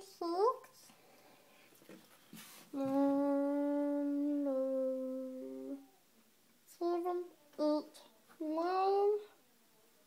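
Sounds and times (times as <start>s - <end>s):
child humming: 2.8s - 6.0s.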